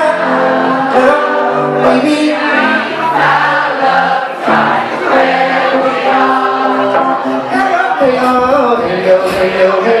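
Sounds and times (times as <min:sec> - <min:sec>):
man singing into microphone: 0:00.0 - 0:03.3, 0:05.7 - 0:10.0
electric guitar: 0:00.0 - 0:10.0.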